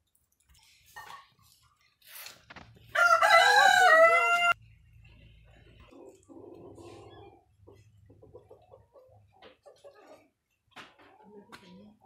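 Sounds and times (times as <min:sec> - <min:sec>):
rooster crowing: 0:02.9 - 0:04.6.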